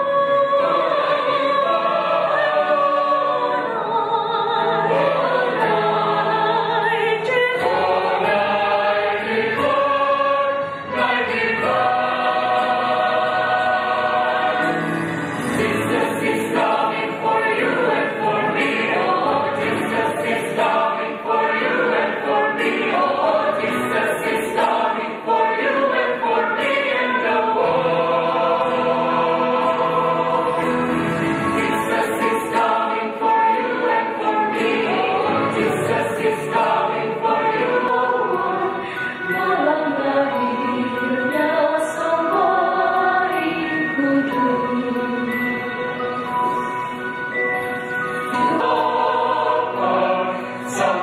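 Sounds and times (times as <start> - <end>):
church choir singing: 0.0 - 51.0.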